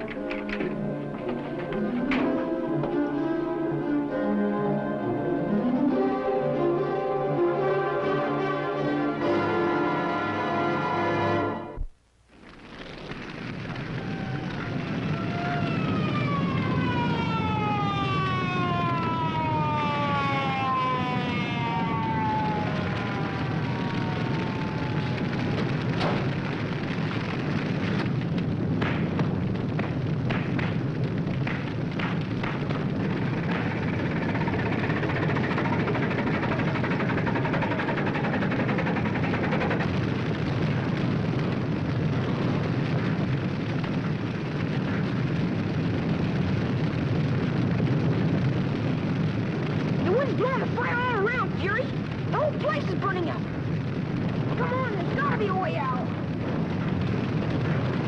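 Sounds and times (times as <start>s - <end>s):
fire cracking and snapping: 0.0s - 4.2s, 11.7s - 58.0s
forest fire burning: 0.0s - 4.2s, 5.0s - 58.0s.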